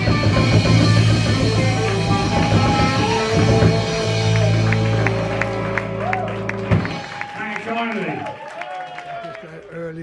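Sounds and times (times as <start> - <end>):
live band amplified music: 0.0 - 8.2.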